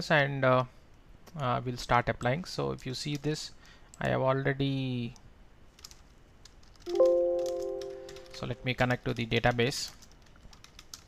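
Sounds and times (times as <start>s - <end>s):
faint keyboard clicks: 5.2s - 11.0s
computer alert chime: 6.9s - 8.7s.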